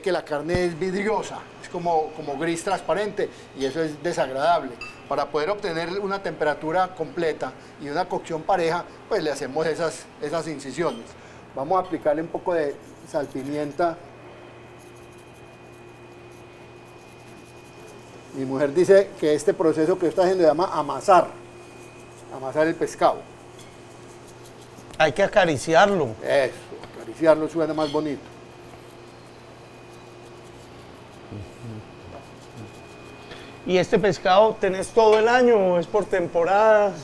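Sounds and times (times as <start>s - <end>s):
faint even hum: 0.0s - 37.0s
low voice murmurs: 31.3s - 32.7s.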